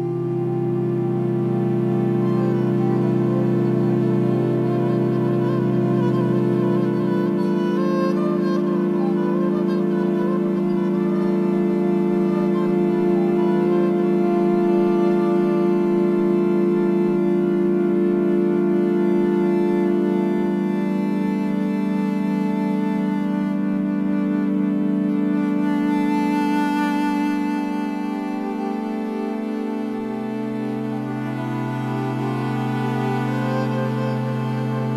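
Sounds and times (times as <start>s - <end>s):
electric viola drone: 0.0s - 34.9s.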